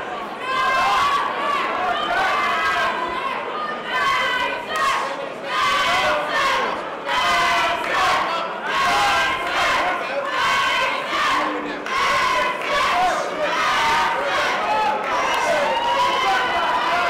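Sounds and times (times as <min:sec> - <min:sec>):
crowd shouting and yelling: 0:00.0 - 0:17.0.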